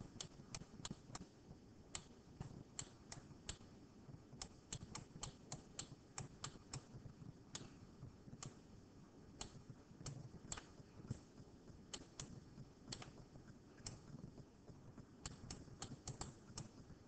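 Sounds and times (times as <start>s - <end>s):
computer pen clicking: 15.2s - 16.8s.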